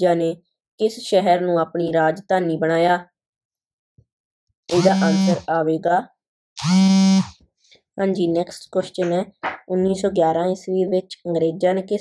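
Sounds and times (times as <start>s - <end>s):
person holding drawn-out syllable: 4.7s - 5.5s.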